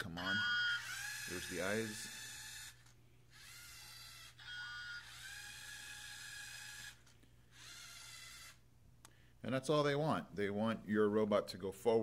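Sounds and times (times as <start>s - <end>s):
robot motors whining: 0.2s - 8.6s.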